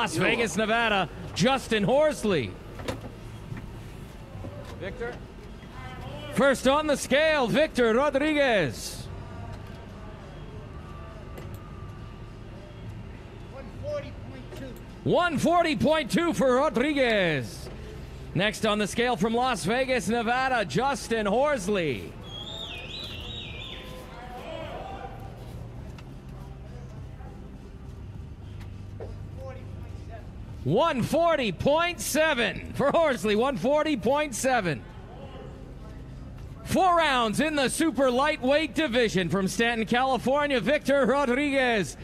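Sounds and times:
faint indistinct voices: 0:00.0 - 0:19.0, 0:21.0 - 0:30.7, 0:33.6 - 0:39.3.

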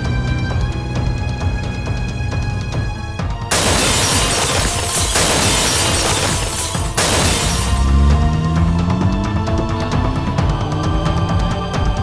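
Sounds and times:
dramatic film music: 0:00.0 - 0:12.0
vehicle crashing and shattering: 0:03.5 - 0:08.4.

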